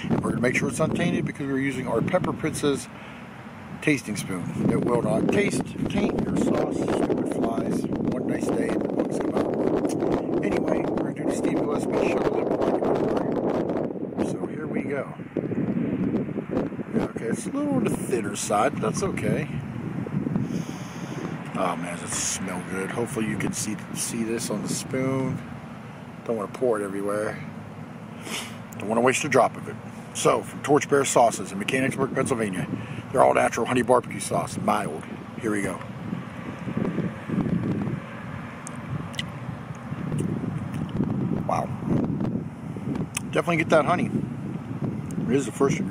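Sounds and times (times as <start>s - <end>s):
wind buffeting microphone: 0.0s - 28.0s, 28.8s - 45.9s.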